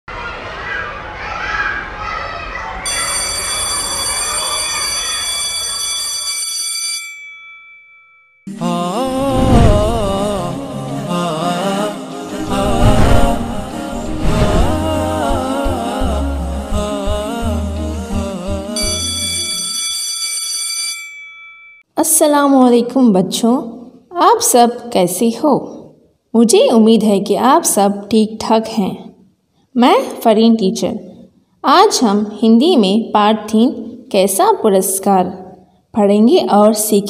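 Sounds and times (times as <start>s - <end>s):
high ringing tone: 2.9s - 8.6s, 18.8s - 21.9s
steady electronic tone: 12.2s - 16.6s.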